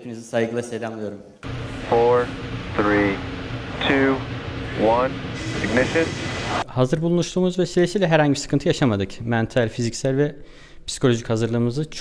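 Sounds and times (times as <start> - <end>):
steady background rush: 1.4 - 6.6.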